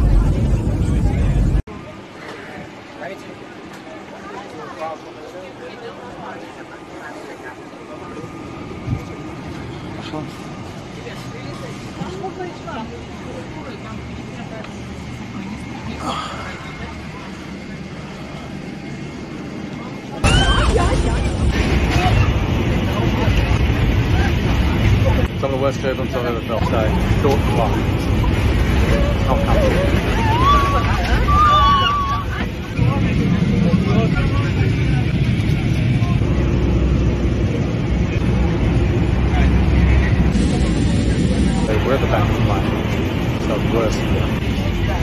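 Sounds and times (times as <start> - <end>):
airliner cabin noise: 0.0 - 45.0
faint voices: 0.0 - 45.0.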